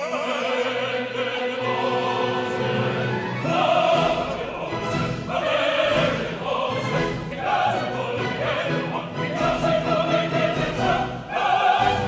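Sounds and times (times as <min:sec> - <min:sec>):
operatic chorus and soloists singing: 0:00.0 - 0:12.0
orchestra playing: 0:01.5 - 0:12.0.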